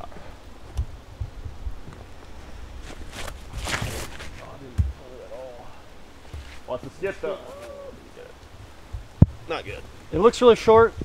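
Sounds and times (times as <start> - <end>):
foot thud: 2.8 - 5.0, 6.2 - 7.8
footsteps on artificial turf: 6.2 - 7.9.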